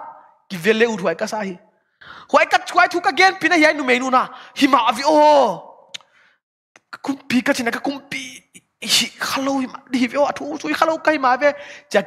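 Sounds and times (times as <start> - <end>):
faint breath: 11.6 - 11.9.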